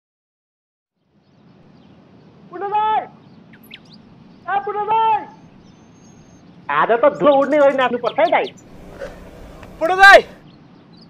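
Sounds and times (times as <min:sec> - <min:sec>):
person giving high call: 0:07.5 - 0:10.4
low outdoor rumble: 0:07.8 - 0:10.4.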